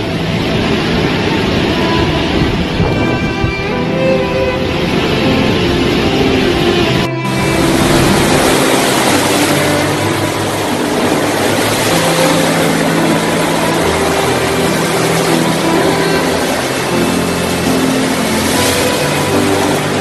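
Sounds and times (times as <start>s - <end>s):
hurricane wind: 0.0s - 20.0s
rushing water: 0.0s - 20.0s.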